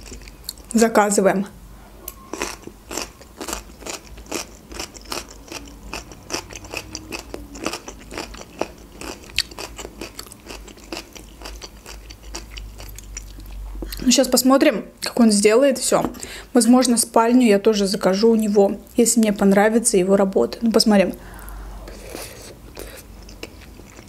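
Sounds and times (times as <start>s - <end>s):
person chewing food: 0.0s - 0.7s, 2.3s - 14.1s, 21.3s - 24.0s.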